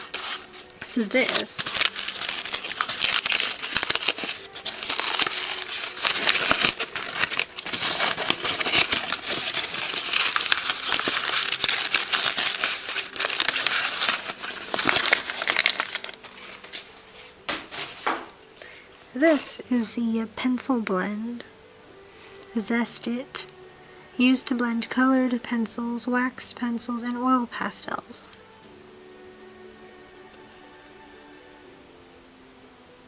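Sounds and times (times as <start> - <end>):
wrapping crinkling and rustling: 0.0 - 19.7.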